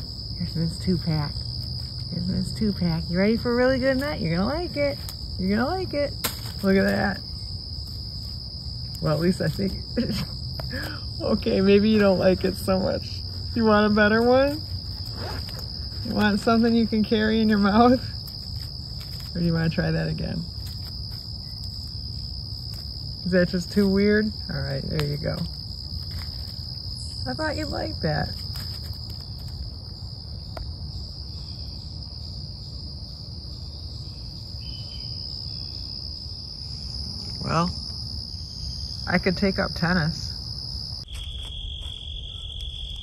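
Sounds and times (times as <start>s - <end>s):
crickets trilling: 0.0s - 43.0s.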